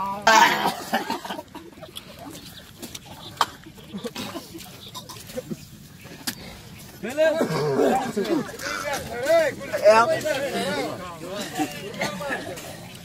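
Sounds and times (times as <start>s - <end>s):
men's low voices murmuring: 0.0s - 13.0s.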